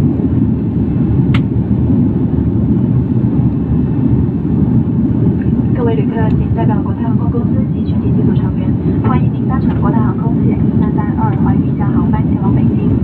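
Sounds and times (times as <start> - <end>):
jet cabin engine rumble: 0.0 - 13.0.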